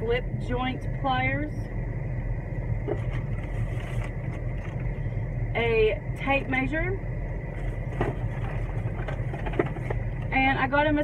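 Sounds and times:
car engine idling: 0.0 - 11.0
thin steady whine: 0.0 - 11.0.

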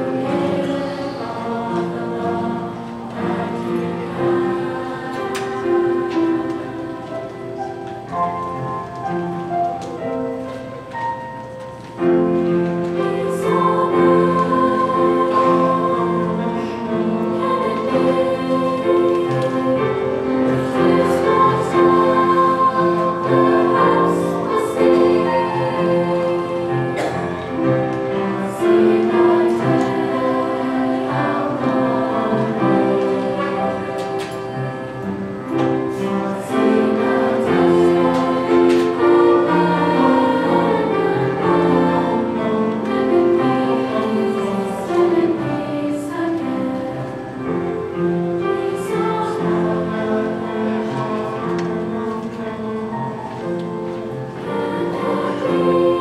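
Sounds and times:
choir singing held chords: 0.0 - 56.0.

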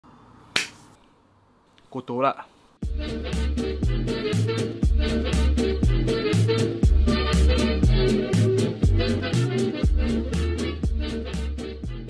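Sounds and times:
sharp snap: 0.5 - 1.0.

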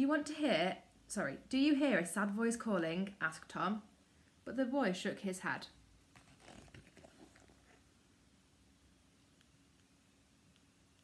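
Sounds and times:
paper pages rustling: 6.1 - 7.9.

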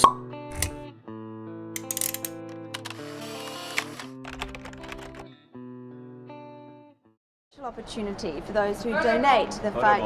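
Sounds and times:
quick clicks: 1.8 - 5.2.

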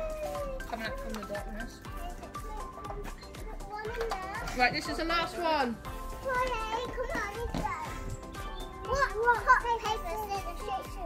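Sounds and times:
upbeat electronic music: 0.0 - 11.0.

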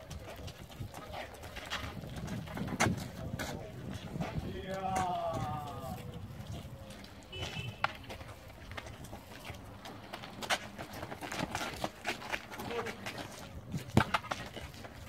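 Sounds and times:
running footsteps on asphalt: 0.0 - 15.0
ball kicks: 12.5 - 14.9.

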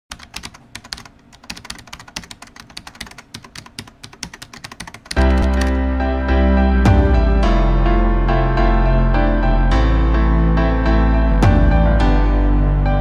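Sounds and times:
keyboard typing clicks: 0.1 - 5.8
loud music with held chords: 5.2 - 13.0.

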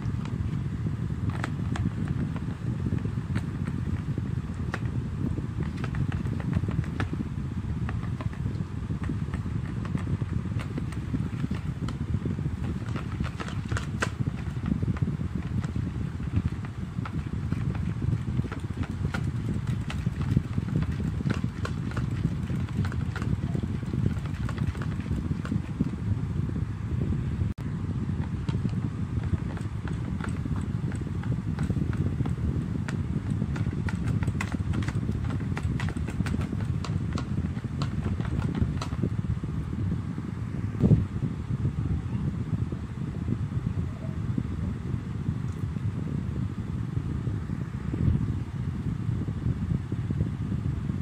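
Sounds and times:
steady low rumble: 0.0 - 51.0
whisk clicking against plastic tub: 5.6 - 7.2, 7.8 - 12.0, 12.6 - 26.0, 28.2 - 39.1.

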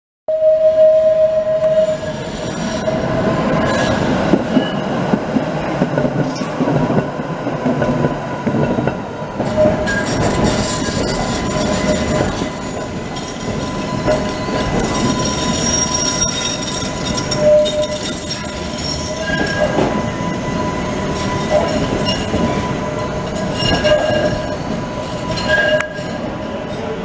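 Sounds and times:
high wheel squeal: 0.4 - 5.0, 9.5 - 27.0
tram wheels rumbling on rails: 0.7 - 27.0.

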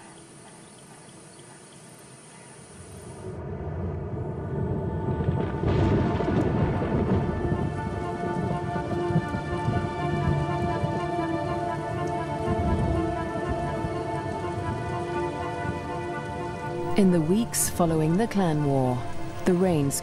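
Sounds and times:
low thunder rumbles: 3.2 - 19.6
music of long held chords: 3.2 - 20.0
heavy rain falling: 4.3 - 20.0.

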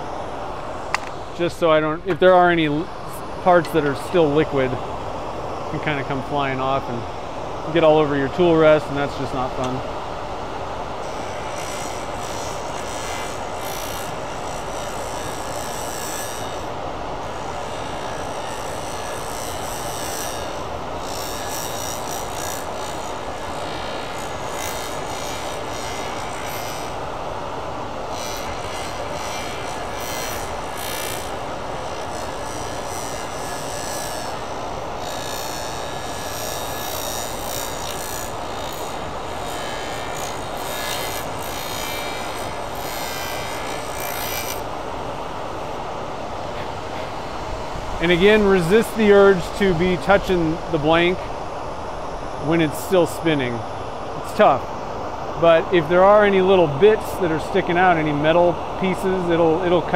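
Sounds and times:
wood lathe whirring: 10.7 - 53.7
hand tool cutting spinning blank: 11.0 - 27.0, 28.0 - 44.7.

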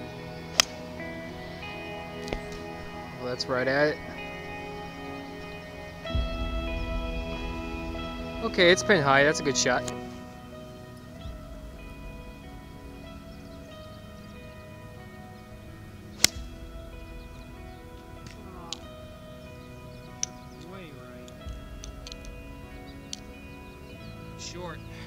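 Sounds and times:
background music: 0.0 - 25.0
golf club striking ball: 0.5 - 1.0, 16.2 - 18.9.

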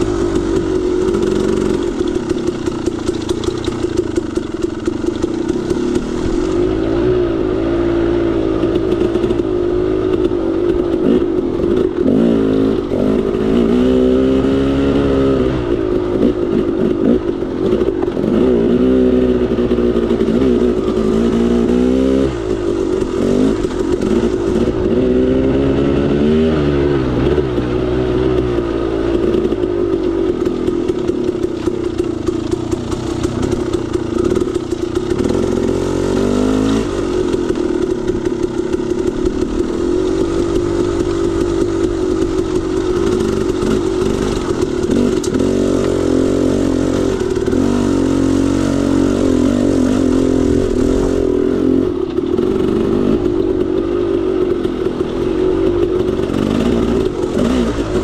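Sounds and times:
clatter: 0.0 - 58.0
dirt bike engine revving: 0.0 - 58.0.

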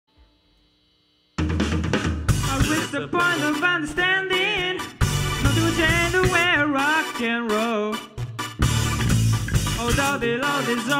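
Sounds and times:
drum kit: 1.4 - 10.9
live rock band: 1.4 - 10.9.

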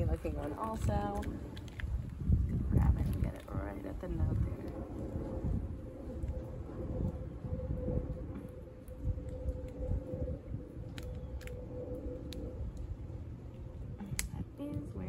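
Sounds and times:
steady hum: 0.0 - 15.0.

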